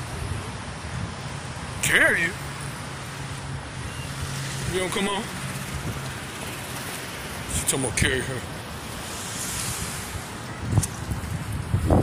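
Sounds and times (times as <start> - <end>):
wind buffeting microphone: 0.0 - 1.5, 5.6 - 6.9, 8.9 - 12.0.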